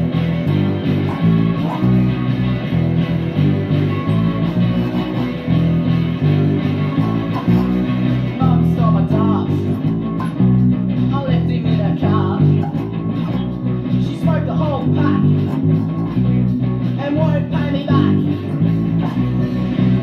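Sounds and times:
electric bass guitar: 0.0 - 20.0
punk rock song: 0.0 - 20.0.

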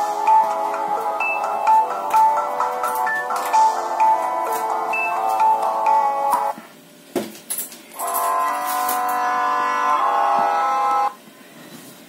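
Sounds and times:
mobile phone ringtone tune: 0.0 - 6.5.

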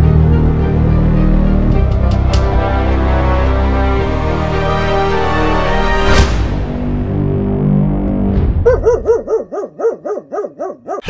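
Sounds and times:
dog yapping: 8.7 - 11.0.

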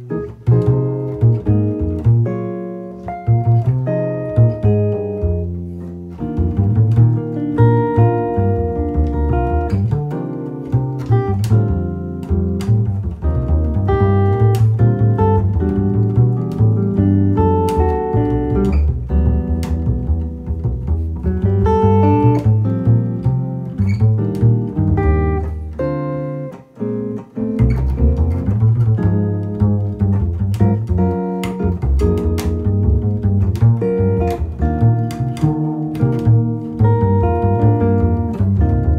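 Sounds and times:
jazz electric guitar: 0.0 - 38.9
plucked double bass: 0.0 - 38.9.

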